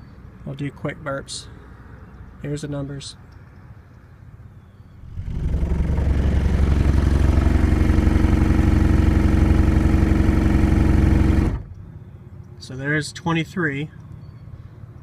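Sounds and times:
subwoofer low test tone: 5.0 - 11.6.

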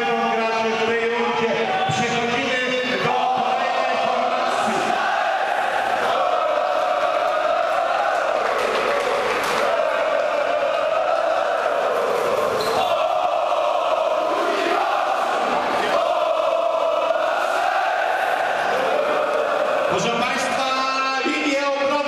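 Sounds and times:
crowd chanting: 1.0 - 21.3.

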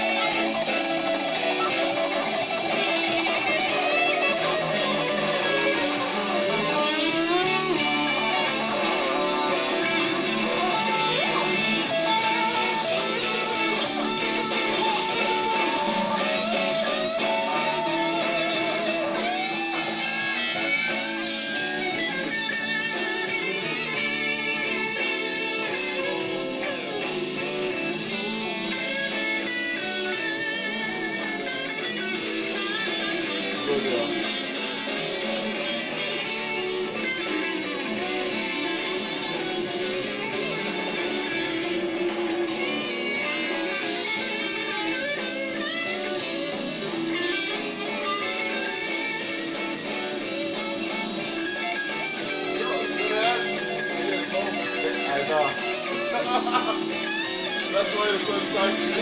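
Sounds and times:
backing band: 0.0 - 59.0
electric guitar solo: 0.0 - 59.0.

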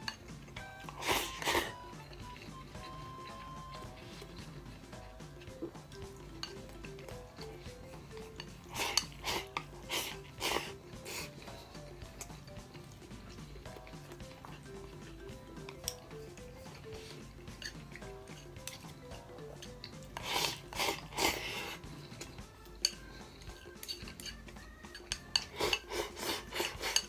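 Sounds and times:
background music: 0.0 - 27.0
rasping eating noise: 0.0 - 27.0
person slurping food: 0.9 - 2.6, 3.2 - 27.0.

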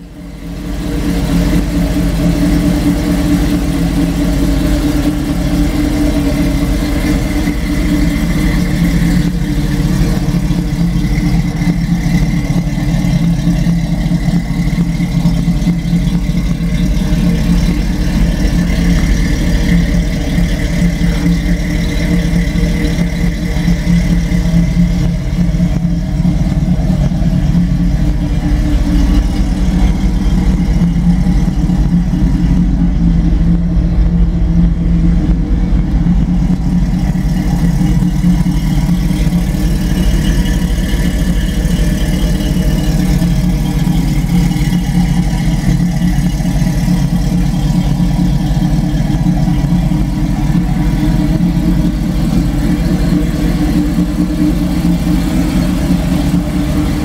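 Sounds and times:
car engine idling: 0.0 - 57.0.

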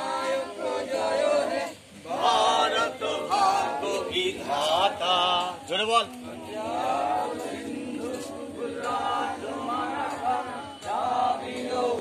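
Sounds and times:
choir singing unaccompanied: 0.0 - 12.0.

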